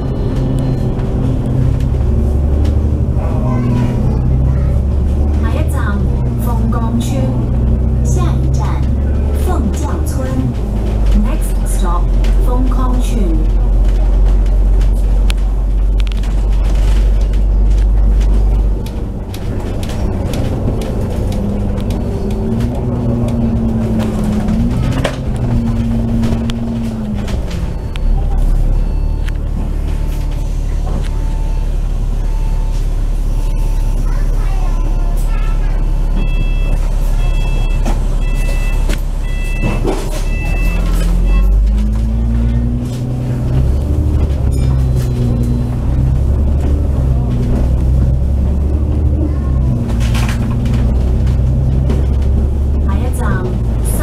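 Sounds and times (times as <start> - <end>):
bus diesel engine: 0.0 - 54.0
short beeping tones: 27.7 - 41.8.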